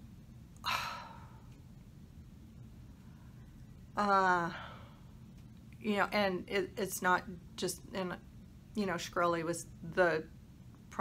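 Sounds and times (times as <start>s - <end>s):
woman sighing: 0.6s - 1.5s.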